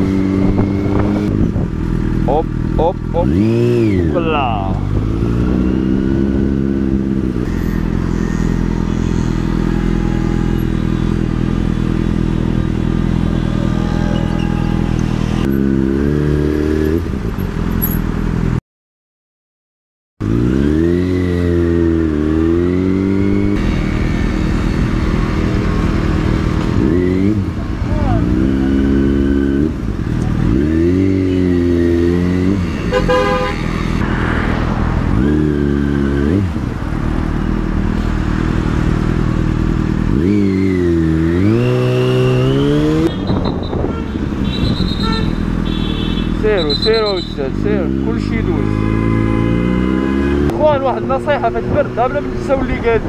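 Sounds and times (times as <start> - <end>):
motorcycle engine revving: 0.0 - 18.6, 20.2 - 53.0
horn toot: 7.4 - 11.8, 12.6 - 15.4, 31.1 - 34.1, 41.5 - 47.6.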